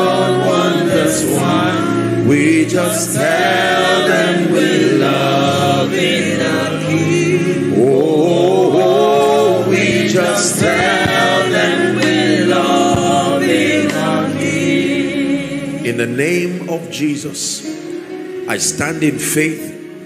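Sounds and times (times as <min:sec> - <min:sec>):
group of voices singing: 0:00.0 - 0:16.5
lead voice singing: 0:00.0 - 0:17.3
sustained instrumental backing: 0:00.0 - 0:20.0.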